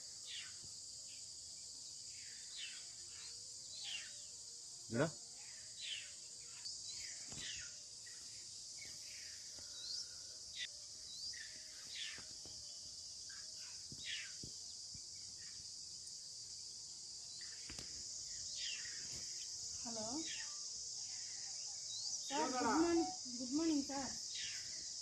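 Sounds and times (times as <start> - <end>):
high-pitched insect drone: 0.0 - 25.0.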